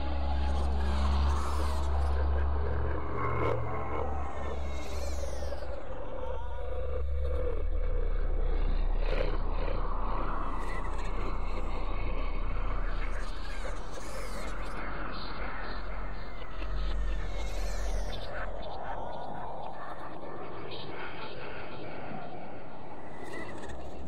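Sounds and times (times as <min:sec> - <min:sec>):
deep low drone: 0:00.0 - 0:23.2.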